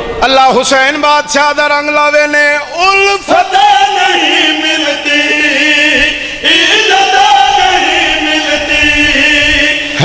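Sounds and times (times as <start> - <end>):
man chanting devotional verse: 0.2 - 10.0.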